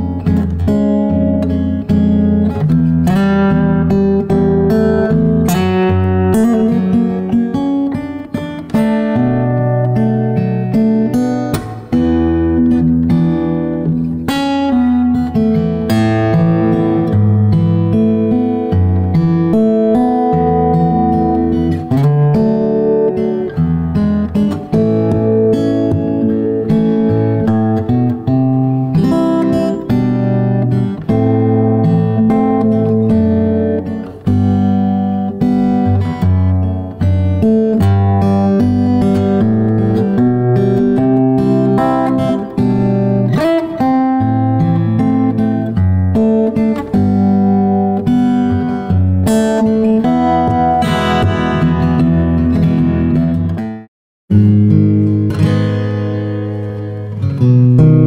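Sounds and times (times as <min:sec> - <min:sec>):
fingerstyle acoustic guitar: 0:00.0 - 0:58.0.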